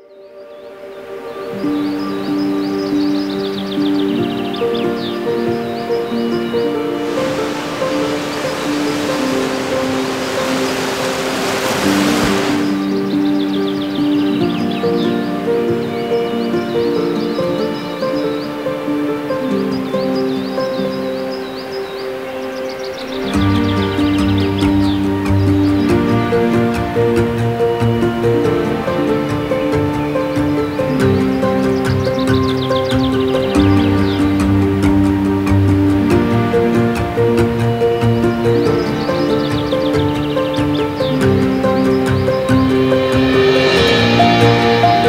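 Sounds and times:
birds chirping: 0.0 - 45.0
slow ambient music: 0.0 - 45.0
rushing waterfall: 0.8 - 45.0.

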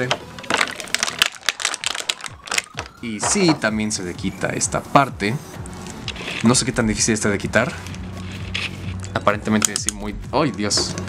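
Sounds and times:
plastic bag crinkling: 0.2 - 3.0.

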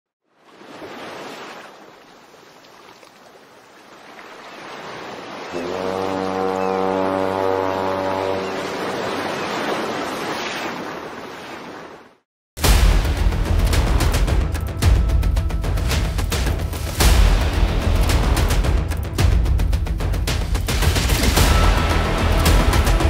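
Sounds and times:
deep horn blast: 5.5 - 8.8, 21.4 - 23.0.

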